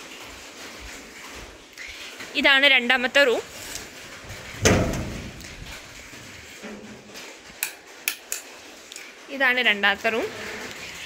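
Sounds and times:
wooden door thudding: 4.3s - 5.9s.

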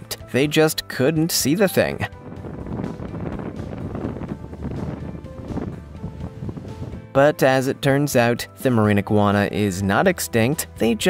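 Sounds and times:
background music: 0.0s - 11.0s
low rushing noise: 2.1s - 7.1s.

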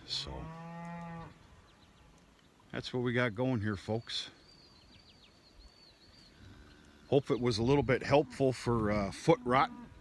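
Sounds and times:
small bird chirping: 3.8s - 7.9s.

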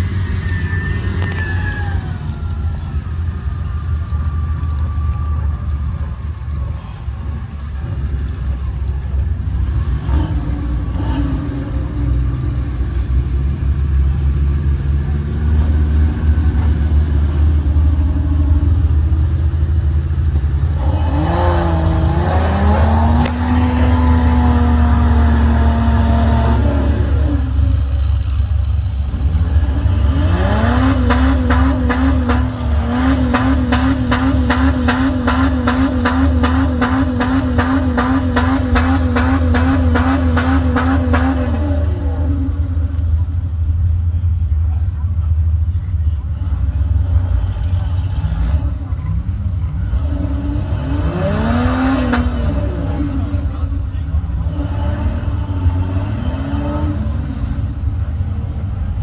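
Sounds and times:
truck engine rumbling and revving: 0.0s - 59.0s.

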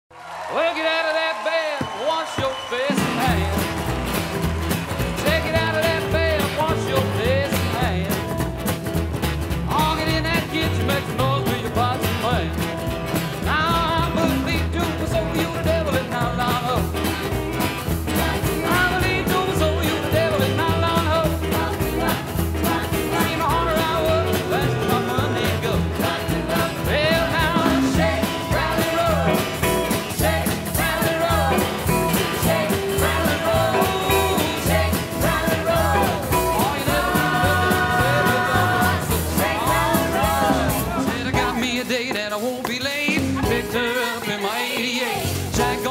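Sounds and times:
man singing: 0.6s - 3.8s, 5.1s - 8.4s, 9.6s - 45.9s
drums: 1.6s - 45.9s
piano: 2.3s - 45.9s
acoustic guitar: 2.9s - 45.9s.

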